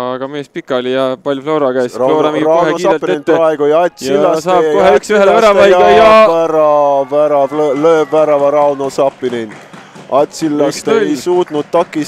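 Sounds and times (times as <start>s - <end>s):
excited commentator exclaiming: 1.9s - 9.5s.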